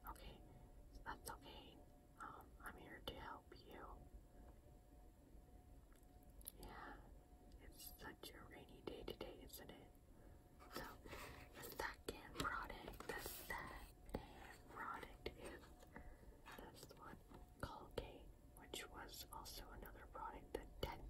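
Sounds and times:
woman whispering: 0.0 - 4.0, 6.5 - 10.0, 10.6 - 15.8, 16.4 - 21.0.

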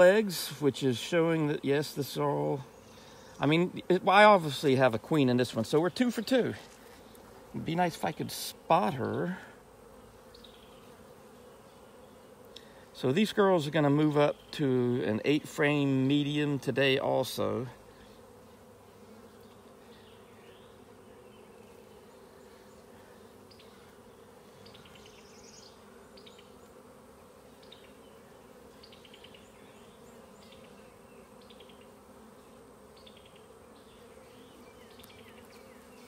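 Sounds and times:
honey bees buzzing: 0.0 - 36.0.

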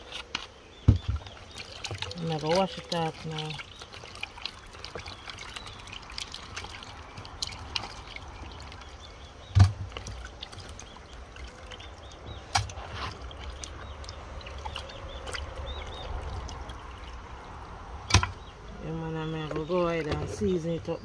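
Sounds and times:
water splashing and trickling: 0.0 - 21.0.

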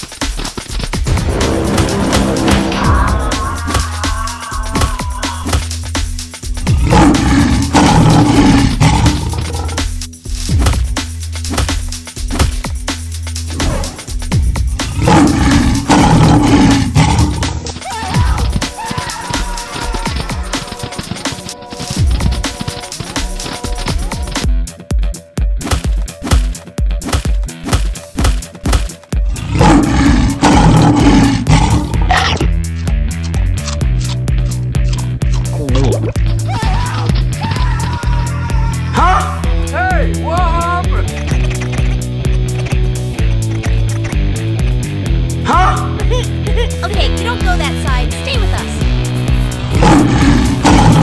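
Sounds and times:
lion roar: 6.6 - 9.8, 14.8 - 17.7, 29.3 - 32.5, 49.6 - 51.0.

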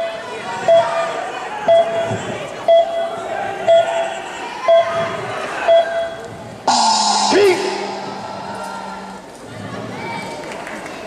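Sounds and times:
crowd murmur and chatter: 0.0 - 11.0
short electronic beep: 6.7 - 9.2.

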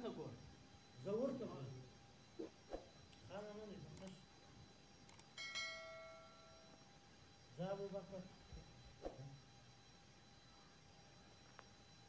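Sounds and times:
bright bell ding: 5.4 - 6.6.

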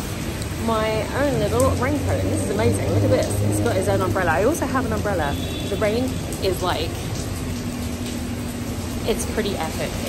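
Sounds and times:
heavy rain: 0.0 - 10.0
traffic on wet street: 0.0 - 10.0.

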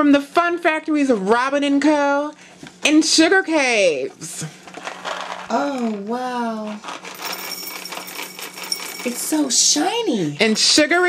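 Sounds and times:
cereal pouring into glass bowl: 6.9 - 9.3.

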